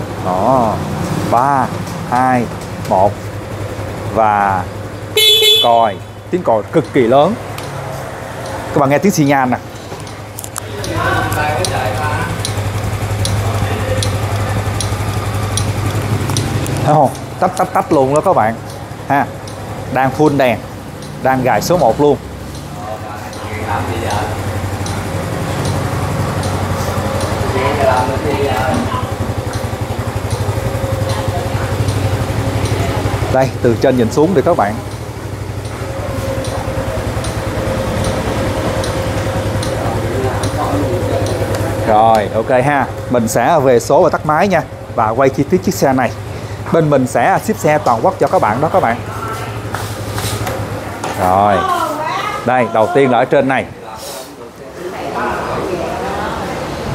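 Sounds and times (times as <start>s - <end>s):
motorcycle engine idling: 0.0s - 53.8s
turn signal flasher clicking: 1.8s - 27.5s, 28.1s - 51.3s
light ticking: 6.0s - 50.9s.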